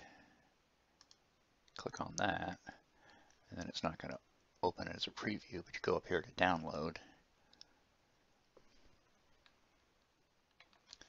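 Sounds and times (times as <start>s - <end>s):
computer mouse click: 1.0s - 2.3s.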